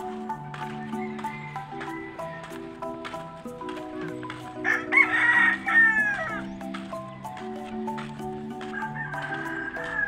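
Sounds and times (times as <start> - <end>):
background music: 0.0 - 10.0
rooster crowing: 0.7 - 2.6, 4.0 - 6.5, 8.6 - 10.0.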